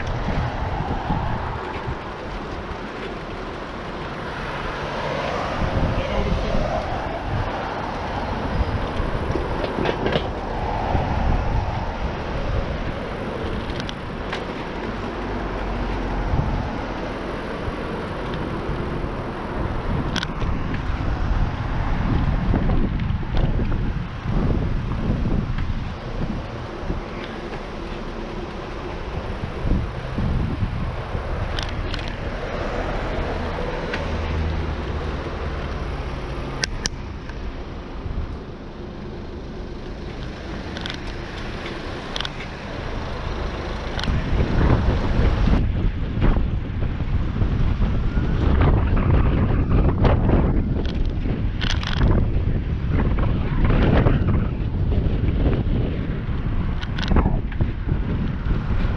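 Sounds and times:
cars passing: 0:00.0 - 0:58.9
wind and road noise: 0:00.0 - 0:58.9.

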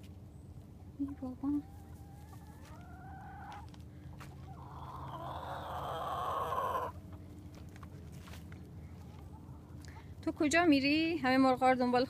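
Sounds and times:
chickens clucking: 0:00.5 - 0:10.2
chicken call rising in pitch: 0:04.6 - 0:07.0.

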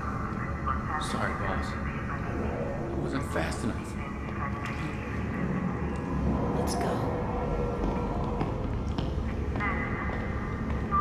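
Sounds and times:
indistinct voices: 0:00.0 - 0:11.0
low machinery hum: 0:00.0 - 0:11.0.

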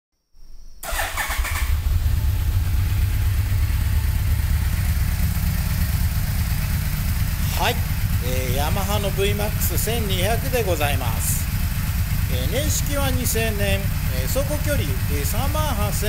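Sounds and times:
motorcycle engine starting and idling: 0:00.8 - 0:16.0.

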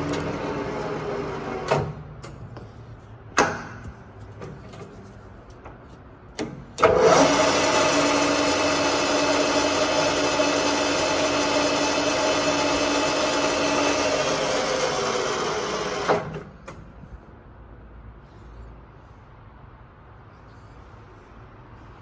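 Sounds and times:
lathe running with hum: 0:06.8 - 0:16.3.

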